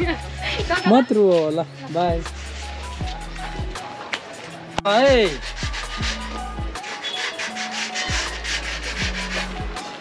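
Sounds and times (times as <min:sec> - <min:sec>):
music with deep bass beat: 0:02.1 - 0:03.9
paintbrush scrubbing steel pole: 0:05.1 - 0:09.7.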